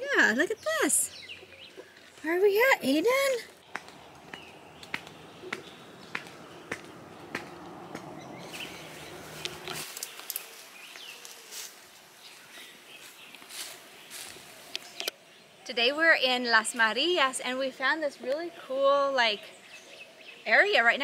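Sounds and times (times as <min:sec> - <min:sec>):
bird chirps: 0:00.2 - 0:11.3
background hiss: 0:08.5 - 0:20.4.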